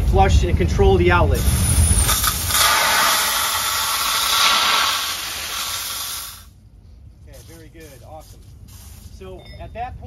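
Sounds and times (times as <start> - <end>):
water rushing from valve: 1.4 - 6.5.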